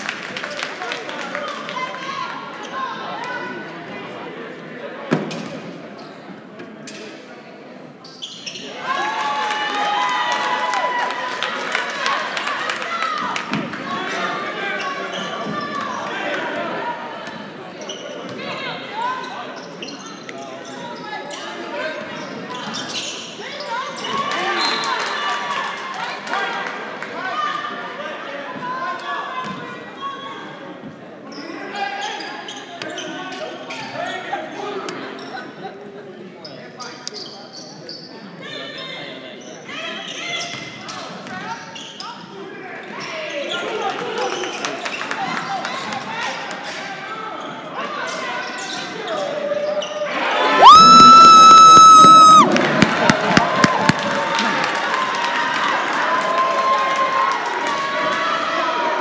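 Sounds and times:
crowd chatter: 0:00.0 - 0:59.0
crowd cheering: 0:50.1 - 0:59.0.

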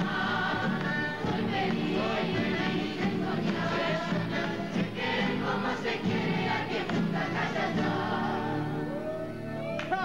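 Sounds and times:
young voices singing in chorus: 0:00.0 - 0:09.2
acoustic guitars strumming: 0:00.0 - 0:09.6.

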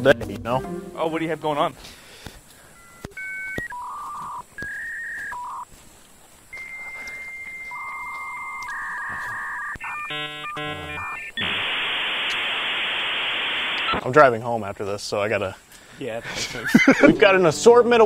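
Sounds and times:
dialled beeps: 0:02.7 - 0:05.7, 0:06.5 - 0:14.0
modem warbling handshake tones: 0:02.8 - 0:05.6, 0:06.6 - 0:12.5
modem answer tones: 0:02.8 - 0:05.7, 0:06.5 - 0:12.7
loud static hiss: 0:08.8 - 0:18.0.

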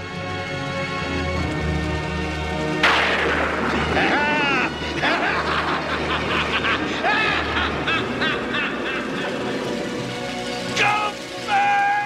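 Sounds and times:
background music: 0:00.0 - 0:12.0
heavy rain: 0:01.0 - 0:12.0.

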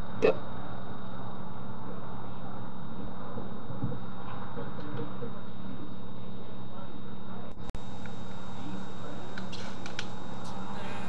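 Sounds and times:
microphone hiss and hum: 0:00.0 - 0:11.0.

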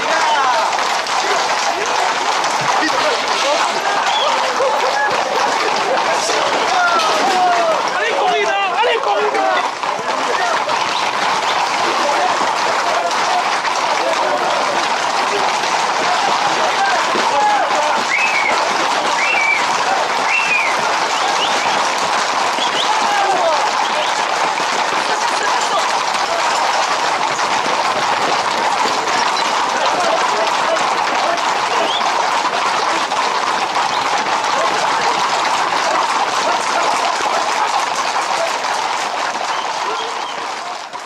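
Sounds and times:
hooves clattering on pavement: 0:00.0 - 0:41.0
street crowd din: 0:00.0 - 0:41.0
high whistle-like calls: 0:18.1 - 0:19.7, 0:20.3 - 0:21.8, 0:22.6 - 0:22.9.

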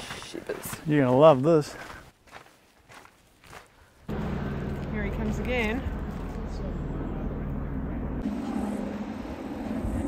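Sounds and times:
footsteps on dirt and rock: 0:00.0 - 0:06.5.

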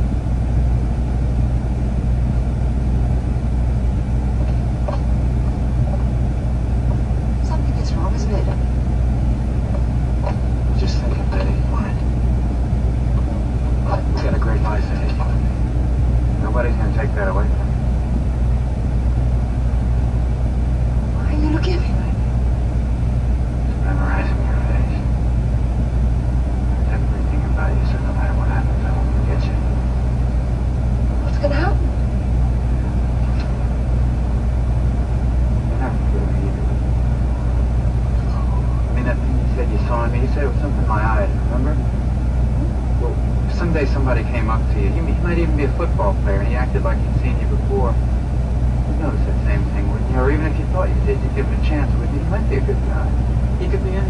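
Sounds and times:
truck engine idling: 0:00.0 - 0:54.0
faint film dialogue from speaker: 0:09.4 - 0:18.6, 0:26.5 - 0:30.4, 0:35.6 - 0:48.0.

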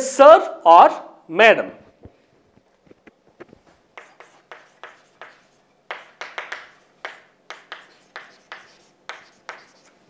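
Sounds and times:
chalk scraping on chalkboard: 0:04.0 - 0:10.0.

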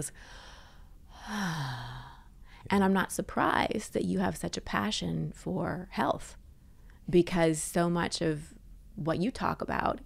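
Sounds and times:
woman sighing: 0:00.2 - 0:02.6.

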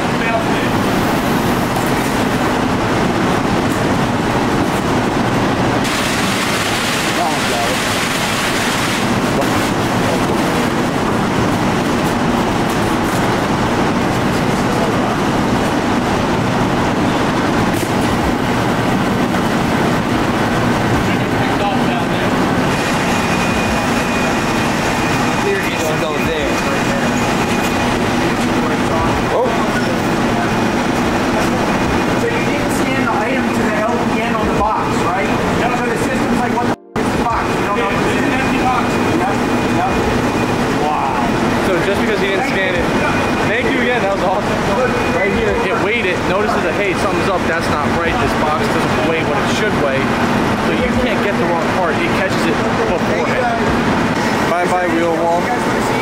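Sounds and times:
roller conveyors running: 0:00.0 - 0:56.0.

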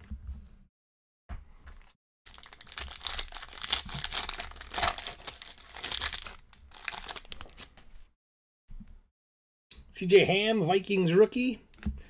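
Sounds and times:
foil wrapper crinkling: 0:02.3 - 0:07.9.

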